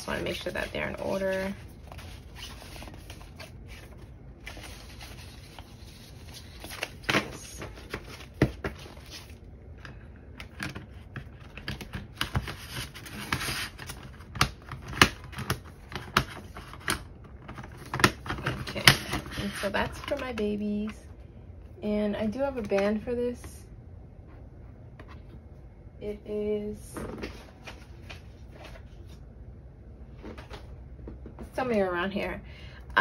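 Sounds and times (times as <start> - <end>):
paper pages handled: 0.1 - 9.4.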